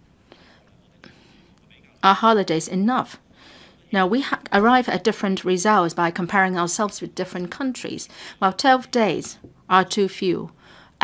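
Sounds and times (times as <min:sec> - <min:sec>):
soft breathy sounds: 0:00.2 - 0:01.8, 0:03.2 - 0:03.9, 0:08.0 - 0:08.4, 0:10.5 - 0:11.0.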